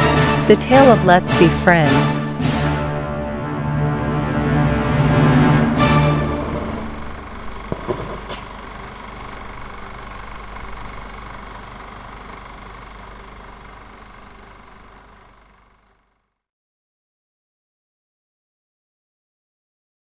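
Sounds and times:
background music: 0.0 - 7.3.

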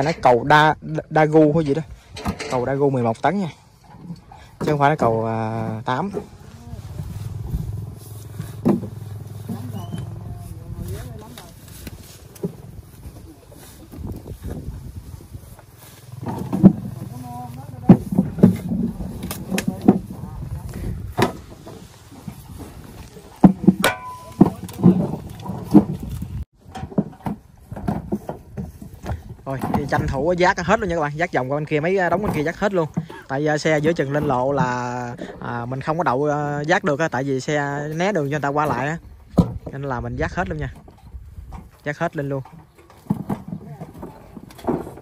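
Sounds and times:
tractor engine running: 4.8 - 26.4.

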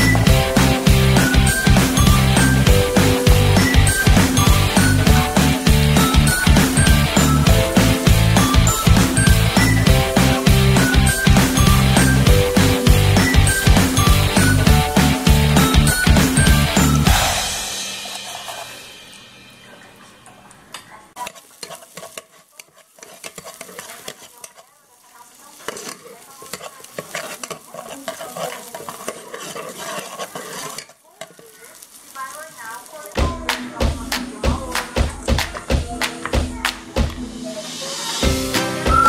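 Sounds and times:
background music: 0.0 - 20.3, 33.2 - 39.0
spatula scraping pot: 0.0 - 32.1
onions sizzling: 0.0 - 36.4.

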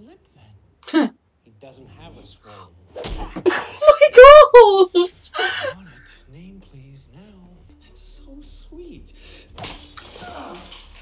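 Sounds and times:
dialogue: 0.2 - 9.4
glass shattering: 9.6 - 11.0.

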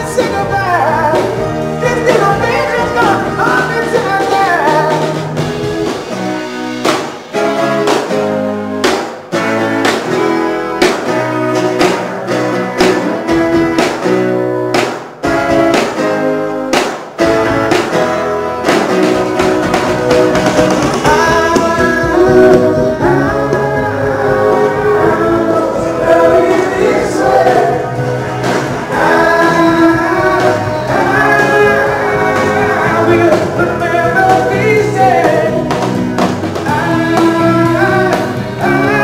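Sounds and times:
person singing: 0.0 - 5.3, 20.8 - 35.9, 36.6 - 39.0
live rock band playing: 0.0 - 39.0
strummed acoustic guitar: 0.2 - 39.0.

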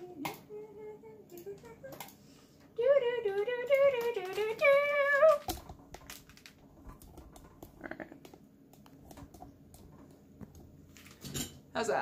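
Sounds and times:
person singing: 0.0 - 2.1, 2.8 - 5.5.

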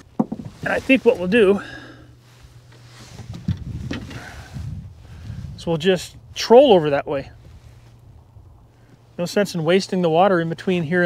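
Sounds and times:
wind buffeting microphone: 3.0 - 8.7.

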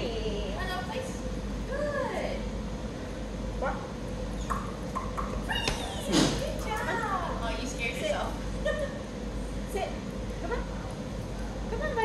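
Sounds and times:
steady background hum: 0.0 - 12.0
dog whining: 4.4 - 6.1.

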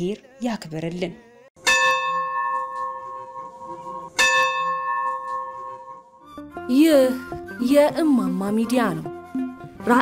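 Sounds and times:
bell ringing: 1.6 - 6.2.

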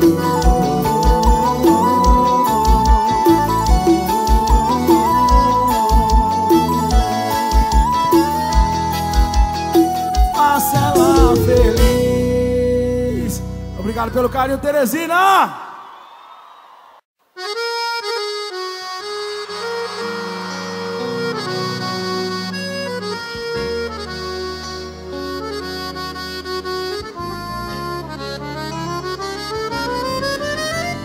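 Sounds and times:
accordion playing: 0.0 - 13.1, 17.4 - 31.0.

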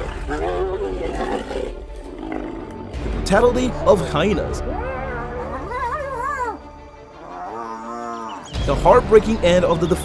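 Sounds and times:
background music: 0.0 - 10.0
hyena whining cries: 4.6 - 8.5.

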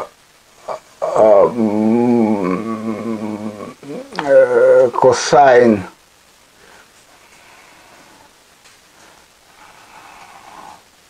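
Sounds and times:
man saying uhh: 0.0 - 5.9.

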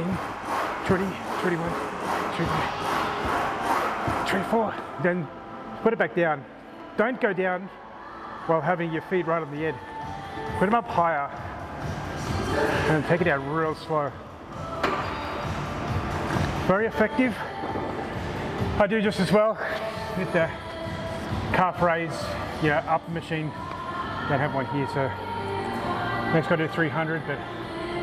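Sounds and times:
background music with low beat: 0.0 - 7.5, 8.6 - 28.0
gym background noise: 0.0 - 9.9, 10.5 - 28.0.

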